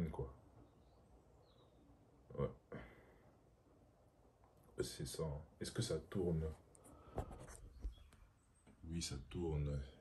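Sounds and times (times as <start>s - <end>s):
hand rubbing phone: 7.0s - 8.1s.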